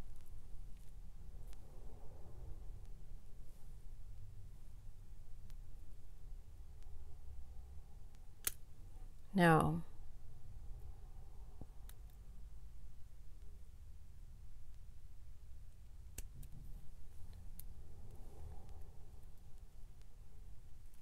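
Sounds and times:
jewelry pliers clicking on wire: 8.4 - 8.6.

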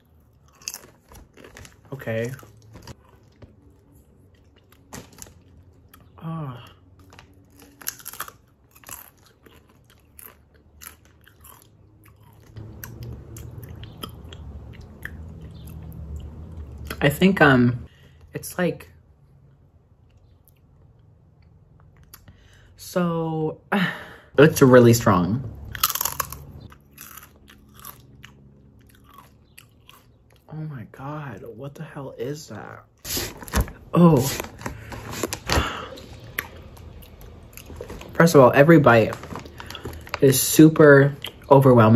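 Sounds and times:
chip crunching and chewing: 0.0 - 17.1, 25.7 - 30.5, 34.1 - 41.9.

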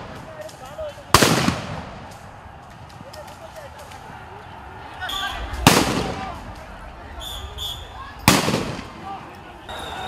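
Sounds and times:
loud gunshot: 1.1 - 1.9, 5.6 - 6.4, 8.2 - 9.0.

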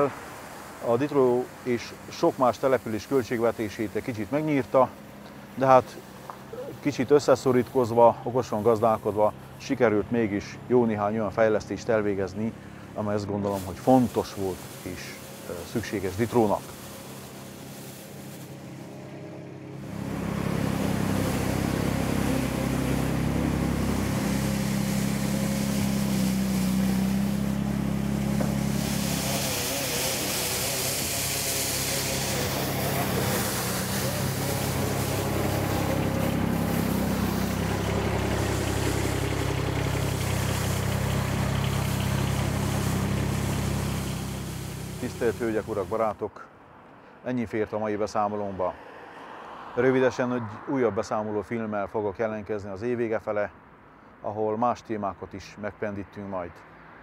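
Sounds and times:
brushes on wet paving: 0.0 - 46.2
sweeping machine running: 12.1 - 46.2.

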